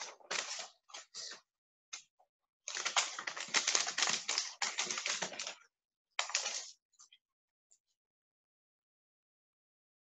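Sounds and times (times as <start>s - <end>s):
rapid small clicks and rustling: 2.7s - 5.6s, 6.2s - 6.8s.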